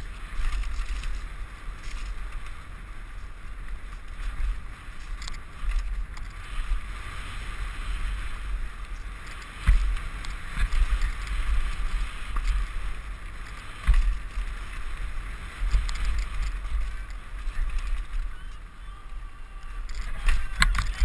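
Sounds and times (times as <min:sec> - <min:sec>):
bike tyres rolling over dirt: 0:00.0 - 0:21.0
wind buffeting microphone: 0:00.0 - 0:21.0
bike knocking over bumps: 0:08.7 - 0:14.9.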